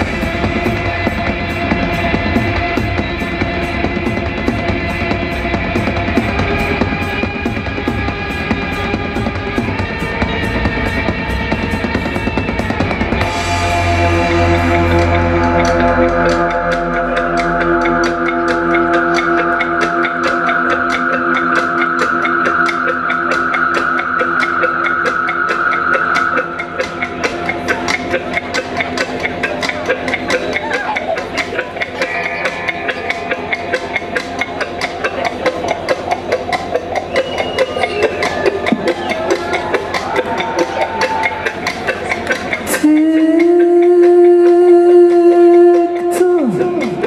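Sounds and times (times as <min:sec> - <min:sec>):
sustained droning chord: 0:00.0 - 0:37.1
guitar notes: 0:00.0 - 0:47.0
rock band playing: 0:00.0 - 0:47.0
steady percussive pulse: 0:00.0 - 0:47.0.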